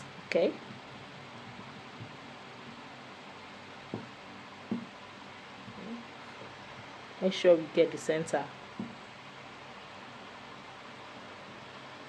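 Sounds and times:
steady room hiss: 0:00.0 - 0:12.0
soft thumps: 0:03.9 - 0:04.9, 0:08.8 - 0:09.0.

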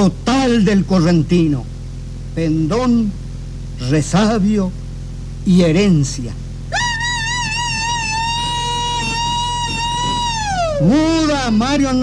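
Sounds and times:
long high-pitched shout: 0:06.7 - 0:11.6.

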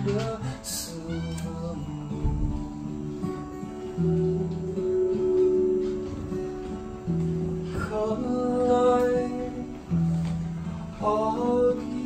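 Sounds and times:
acoustic guitars playing chords: 0:00.0 - 0:12.0.

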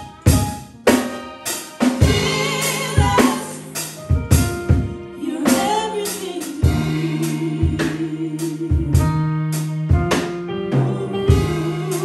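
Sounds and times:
drum hits: 0:00.0 - 0:05.8, 0:09.9 - 0:12.0
live band accompaniment: 0:00.0 - 0:12.0
two women singing gospel: 0:02.0 - 0:09.5, 0:10.7 - 0:12.0.

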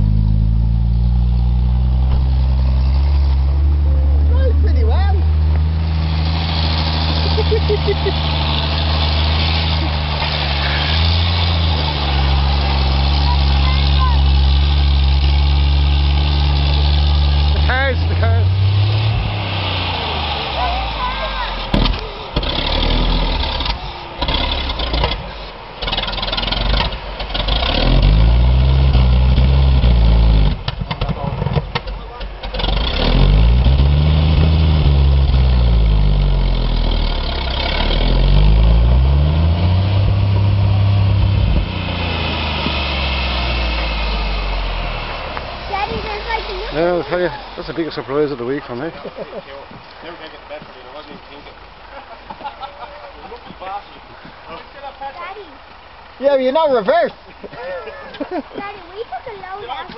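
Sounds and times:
fire engine engine running: 0:00.0 - 0:59.9.

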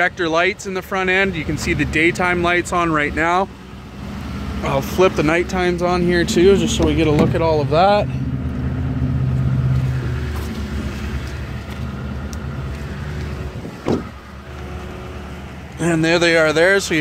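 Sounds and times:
truck engine idling: 0:00.0 - 0:17.0
car door shutting thump: 0:13.8 - 0:14.2.

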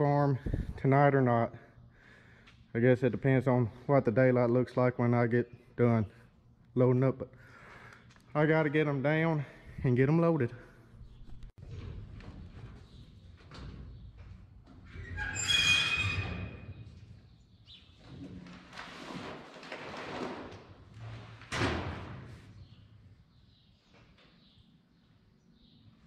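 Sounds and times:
short squeal: 0:15.2 - 0:16.7.

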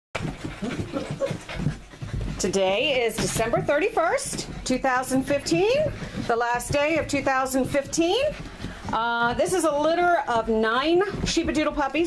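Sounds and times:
puppy noises: 0:00.2 - 0:04.8, 0:05.8 - 0:09.9
puppies breathing: 0:00.2 - 0:12.0.

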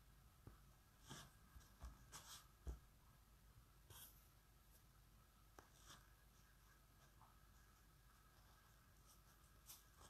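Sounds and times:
soft rustle: 0:00.5 - 0:02.8, 0:05.5 - 0:10.0.

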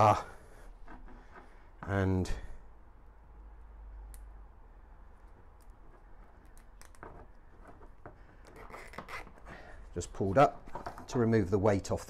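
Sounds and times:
cable tie clicks and rustles: 0:05.2 - 0:11.5.

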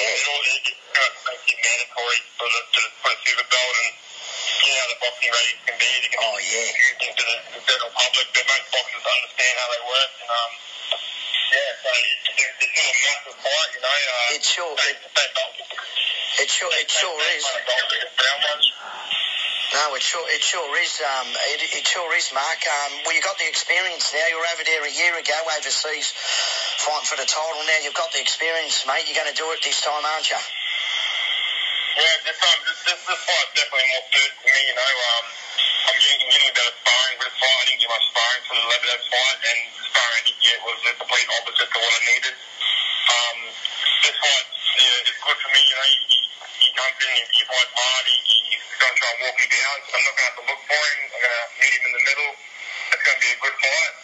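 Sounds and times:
man talking: 0:00.0 - 0:10.7, 0:11.3 - 0:30.6, 0:32.0 - 0:54.0.

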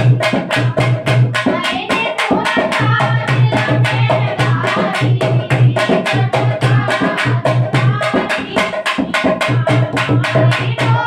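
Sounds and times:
hand drum beat: 0:00.0 - 0:11.0
women singing devotional song: 0:00.0 - 0:11.0.

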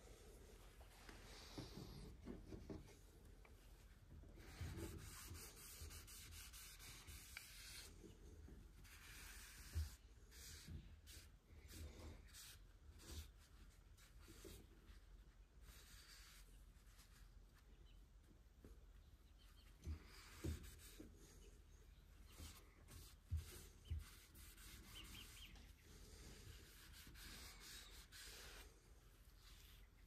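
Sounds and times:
cloth rubbing on wood: 0:04.4 - 0:07.9, 0:22.3 - 0:25.5, 0:26.1 - 0:29.8.

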